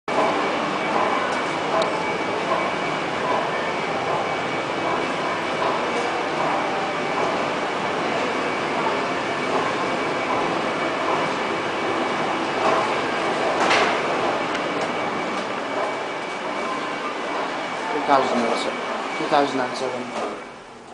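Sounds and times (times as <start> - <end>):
elevator doors opening: 0.2 - 20.9.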